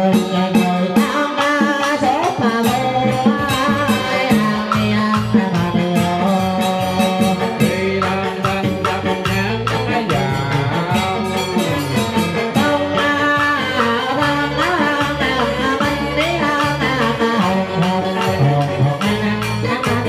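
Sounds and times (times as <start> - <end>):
electric guitar: 0.0 - 20.0
electronic keyboard melody: 0.0 - 20.0
percussion beat: 0.0 - 20.0.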